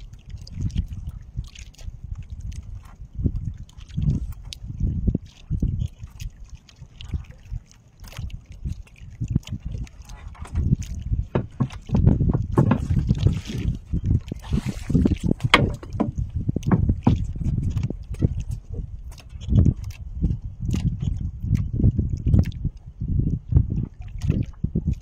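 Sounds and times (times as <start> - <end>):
water slapping boat hull: 0.0 - 25.0.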